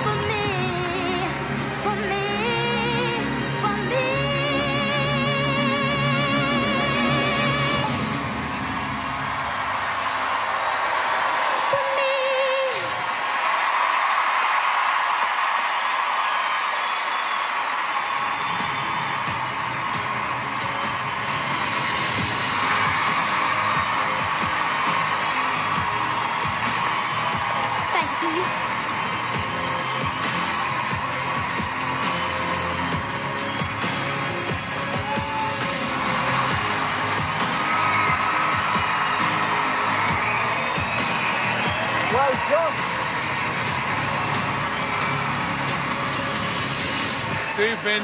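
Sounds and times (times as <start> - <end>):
audience applauding and cheering: 0.0 - 48.0
music: 0.0 - 48.0.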